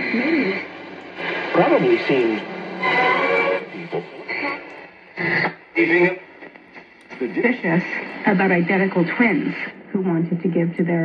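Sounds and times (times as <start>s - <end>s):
voice over radio speaker: 1.2s - 11.0s.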